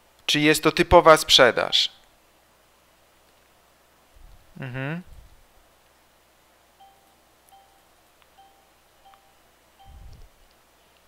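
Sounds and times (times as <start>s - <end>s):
short electronic chime tones: 6.8s - 7.8s, 8.4s - 10.1s.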